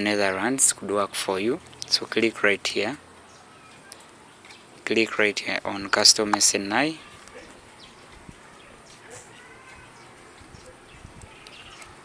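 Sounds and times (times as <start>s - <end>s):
faint background noise: 0.0s - 12.0s.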